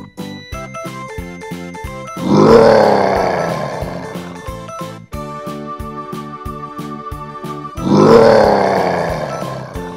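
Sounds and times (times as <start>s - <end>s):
children's music with steady beat: 0.0s - 9.9s
bear roar: 2.2s - 4.4s, 7.8s - 9.9s.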